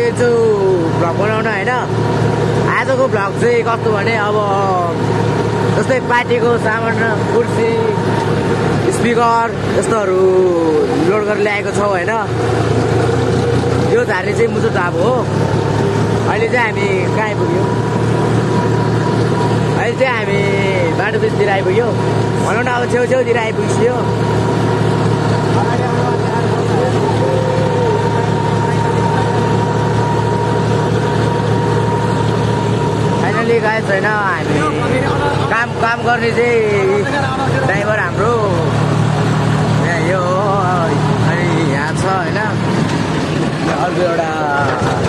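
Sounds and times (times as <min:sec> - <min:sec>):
man speaking: 0:00.0 - 0:12.4, 0:13.8 - 0:15.4, 0:16.1 - 0:17.9, 0:19.8 - 0:24.2, 0:33.1 - 0:38.8, 0:39.8 - 0:42.7
tractor diesel engine running: 0:00.0 - 0:45.0
thin steady whine: 0:16.0 - 0:38.6.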